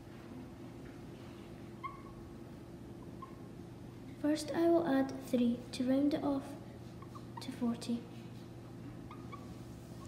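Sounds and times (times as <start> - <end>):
steady low hum: 0.0 - 10.0
whiteboard marker squeaking: 1.8 - 2.2, 7.0 - 7.6, 9.1 - 10.0.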